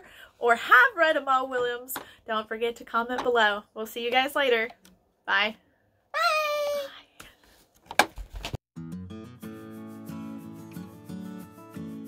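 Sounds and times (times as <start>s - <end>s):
girl's high-pitched call: 6.1s - 6.9s.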